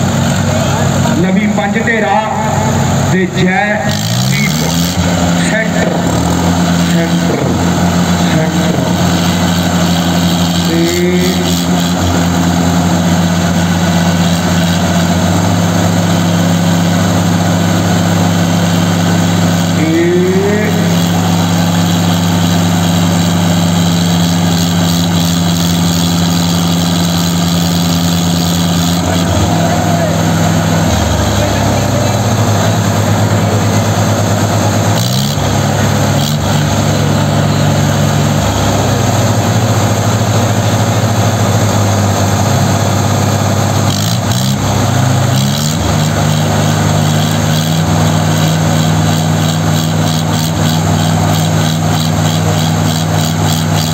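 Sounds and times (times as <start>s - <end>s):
diesel tractor engines under load: 0.0s - 53.9s.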